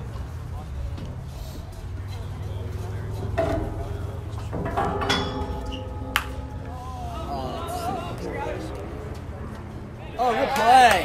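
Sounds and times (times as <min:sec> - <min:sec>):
crowd and player voices: 0:00.0 - 0:11.0
bat hitting baseball: 0:04.7 - 0:06.8.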